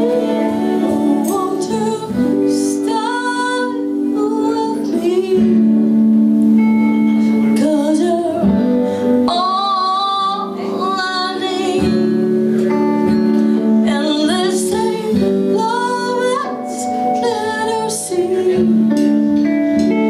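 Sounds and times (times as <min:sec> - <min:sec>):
woman singing with vibrato: 0:00.0 - 0:06.3, 0:07.2 - 0:20.0
acoustic guitar: 0:00.0 - 0:20.0
electric guitar chords: 0:00.0 - 0:20.0.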